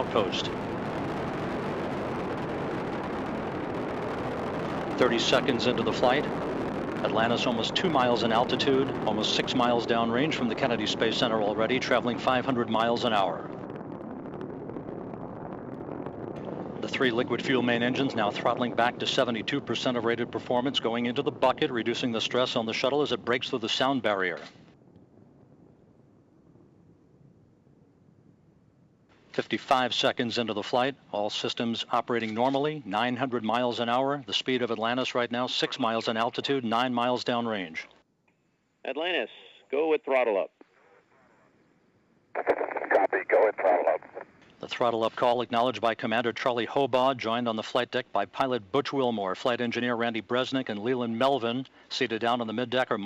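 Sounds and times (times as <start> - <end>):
rocket engines roaring: 0.0 - 27.2, 42.4 - 53.0.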